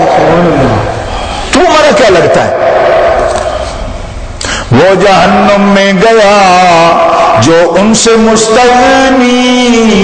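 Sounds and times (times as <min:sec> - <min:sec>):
man preaching through amplifier: 0:00.0 - 0:03.4, 0:04.6 - 0:10.0.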